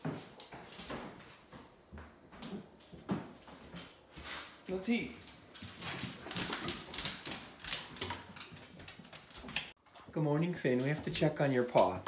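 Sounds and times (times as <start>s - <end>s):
dog claws clicking on wood floor: 5.2s - 9.8s, 10.8s - 12.0s.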